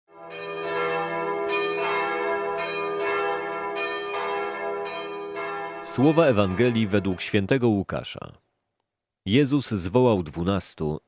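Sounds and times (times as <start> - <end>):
church bells ringing: 0.1 - 7.6.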